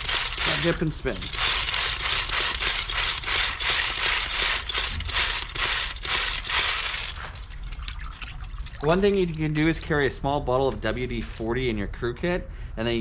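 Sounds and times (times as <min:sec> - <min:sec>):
brush spinner rattling and clicking: 0:00.0 - 0:07.5.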